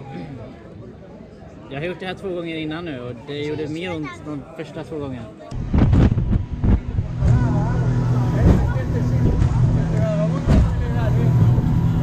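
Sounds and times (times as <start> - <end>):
boat engine humming: 5.6 - 12.0.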